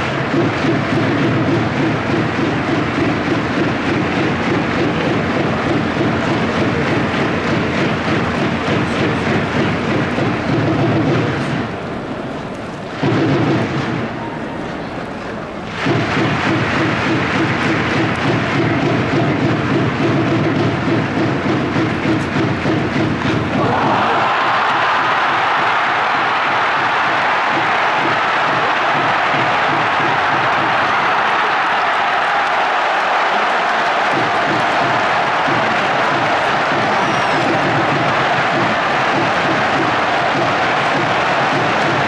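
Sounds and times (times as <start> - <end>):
crowd applause: 0.0 - 11.6, 15.6 - 42.0
crowd cheering song: 0.0 - 12.1, 15.7 - 42.0.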